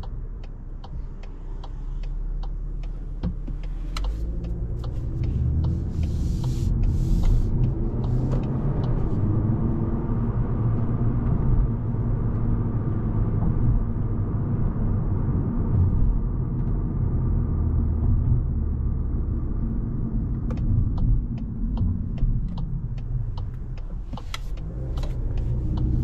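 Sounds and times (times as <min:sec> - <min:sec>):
car cabin road and engine rumble: 0:00.0 - 0:26.0.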